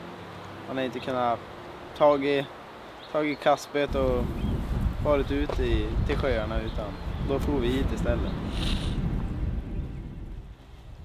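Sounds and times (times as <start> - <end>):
wind buffeting microphone: 3.9 - 11.0.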